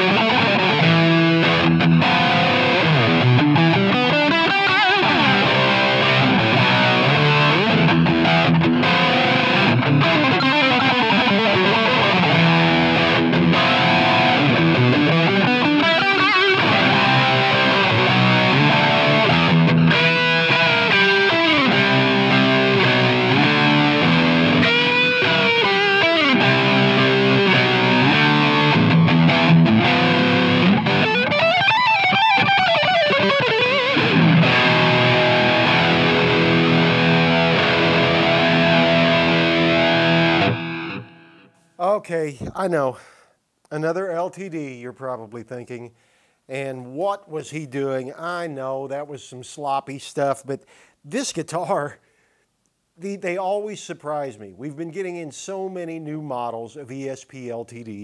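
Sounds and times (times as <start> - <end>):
distorted electric guitar lead: 0.0 - 41.6.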